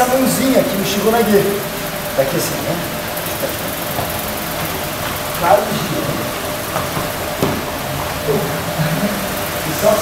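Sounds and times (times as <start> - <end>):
room noise: 0.0 - 10.0
thump on foam mats: 6.8 - 7.7.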